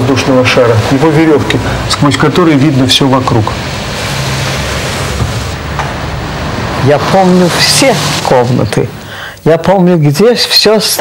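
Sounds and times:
street traffic rushing: 0.0 - 9.5
low engine hum: 3.2 - 9.1.

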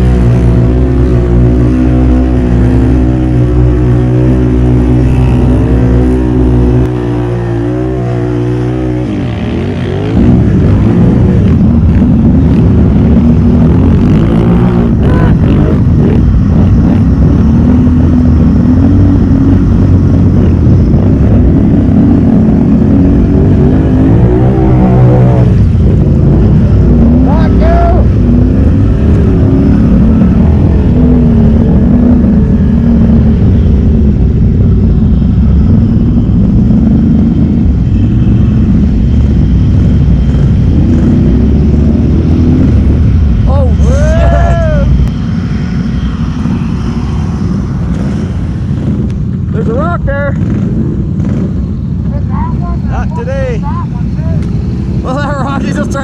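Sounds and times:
atv engine running under load: 0.0 - 56.0.

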